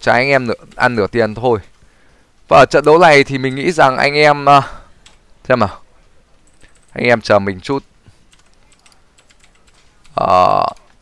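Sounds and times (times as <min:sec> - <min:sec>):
faint keyboard typing: 0:04.6 - 0:11.0.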